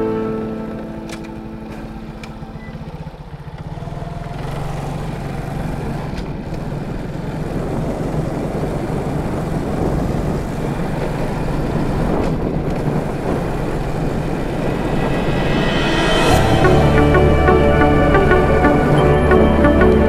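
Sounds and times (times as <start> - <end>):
background music: 0.0 - 2.6, 14.4 - 20.0
vehicle engine running: 0.0 - 20.0
wind noise on microphone: 7.5 - 19.1.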